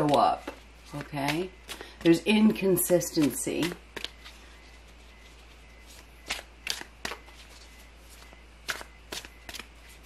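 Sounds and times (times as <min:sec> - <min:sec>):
cards being handled: 0:00.0 - 0:10.0.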